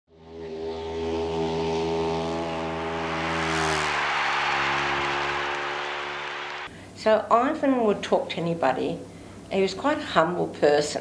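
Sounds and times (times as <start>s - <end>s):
motorcycle engine at high revs: 0.2s - 6.4s.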